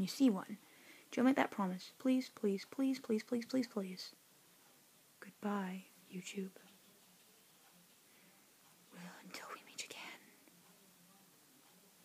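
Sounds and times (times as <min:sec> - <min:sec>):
person whispering: 0:05.2 - 0:07.2, 0:08.9 - 0:10.8.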